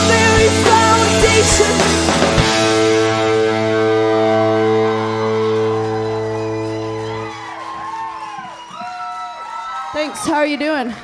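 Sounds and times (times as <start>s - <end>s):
electric guitar and bass chord: 0.0s - 7.4s.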